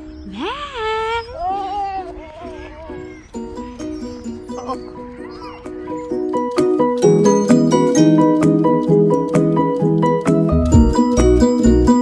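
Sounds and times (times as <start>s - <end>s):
toddler crying and babbling: 0.3s - 6.2s
background music: 2.7s - 12.0s.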